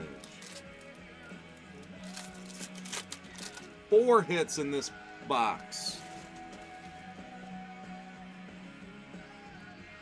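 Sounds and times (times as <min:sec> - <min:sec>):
foil wrapper crinkling: 0:00.0 - 0:03.8, 0:05.7 - 0:07.1
quiet background music: 0:00.0 - 0:10.0.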